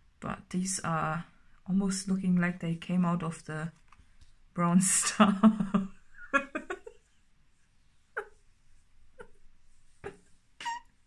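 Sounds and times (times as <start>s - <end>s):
woman giggling: 5.0s - 7.1s, 8.1s - 8.4s, 9.2s - 9.4s, 10.0s - 10.9s.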